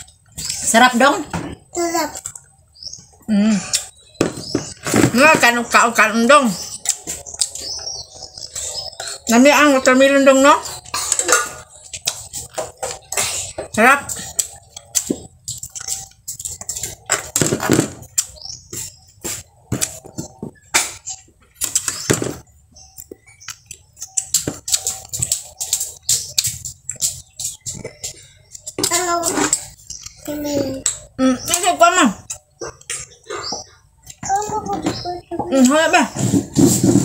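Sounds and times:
person chewing with lip-smacks: 0:14.2 - 0:17.4
fingers clicking on a plate: 0:22.9 - 0:34.3.

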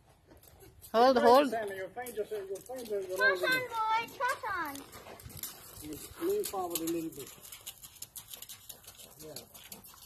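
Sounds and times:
hooves and footsteps on gravel: 0:00.0 - 0:10.0.

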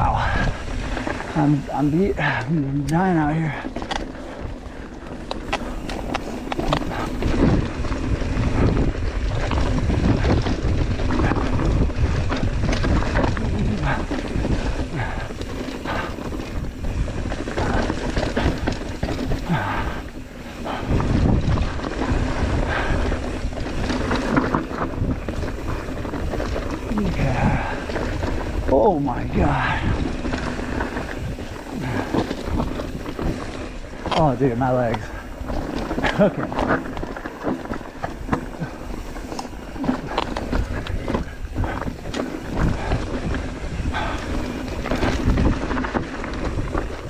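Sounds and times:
bike rattling and knocking: 0:00.0 - 0:47.0
tyres crunching over gravel: 0:00.0 - 0:47.0
wind buffeting microphone: 0:00.0 - 0:47.0.

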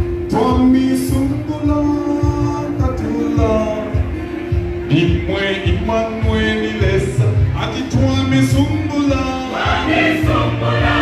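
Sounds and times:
low thumping beat: 0:00.0 - 0:11.0
church choir singing: 0:09.5 - 0:11.0.

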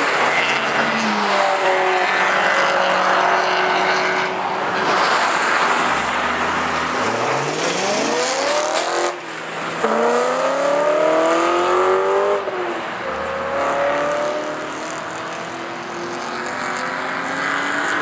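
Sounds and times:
race car engines accelerating: 0:00.0 - 0:18.0.

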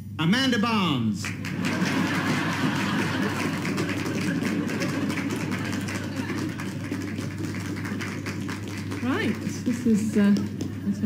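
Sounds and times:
audience applause: 0:01.2 - 0:10.8.

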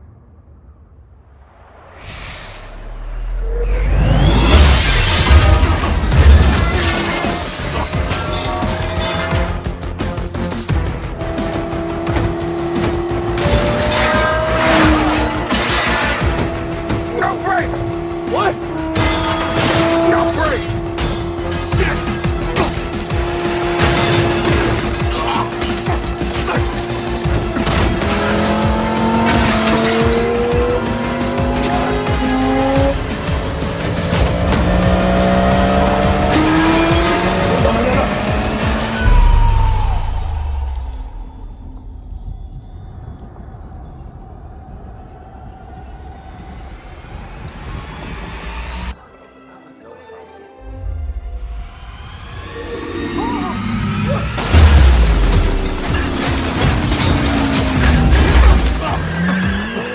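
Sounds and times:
tense film score: 0:00.0 - 0:59.9
glass shattering: 0:04.6 - 0:09.3, 0:55.5 - 0:59.7
sports car engine: 0:10.1 - 0:39.9
deep boom: 0:54.4 - 0:56.0.

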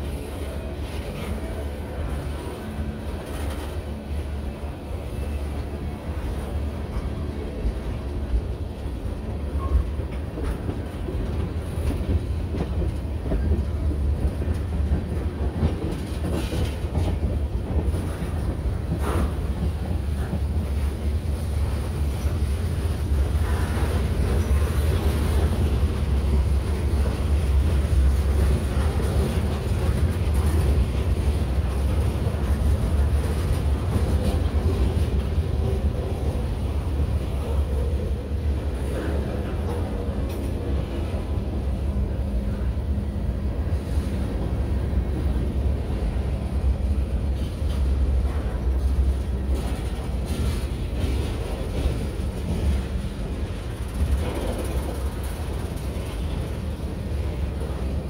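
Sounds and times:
freight train wheels rumbling: 0:00.0 - 0:58.0.

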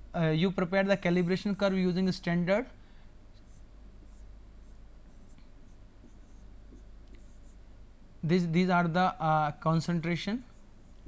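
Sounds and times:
low steady hum: 0:00.0 - 0:11.0
pen scratching on board: 0:03.4 - 0:07.6.

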